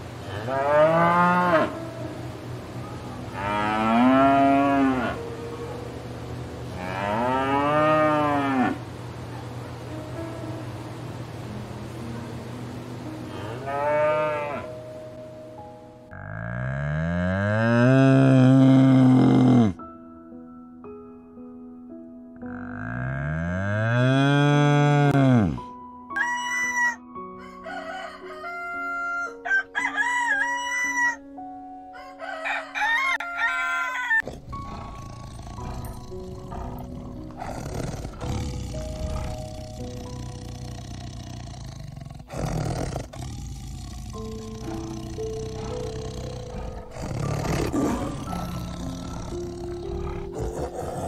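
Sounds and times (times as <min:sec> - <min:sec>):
background music with held notes: 0:00.0 - 0:51.0.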